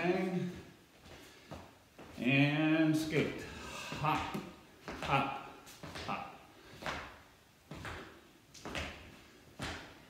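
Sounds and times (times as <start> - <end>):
feet thumping on floor: 0.4 - 2.2, 3.8 - 10.0.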